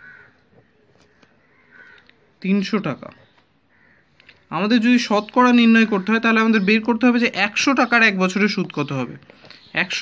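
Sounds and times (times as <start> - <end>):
faint bird calls: 0.0 - 2.4, 3.1 - 4.6.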